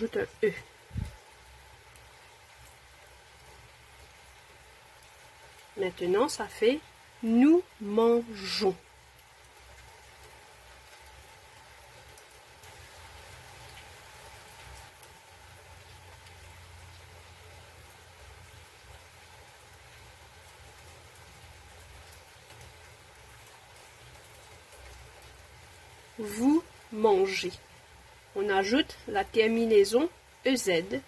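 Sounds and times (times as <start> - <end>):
faint steady hiss: 0.0 - 31.0.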